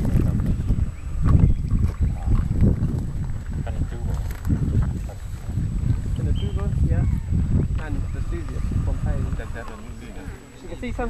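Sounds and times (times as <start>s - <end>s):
wind buffeting microphone: 0.0s - 11.0s
faint voices: 6.0s - 11.0s.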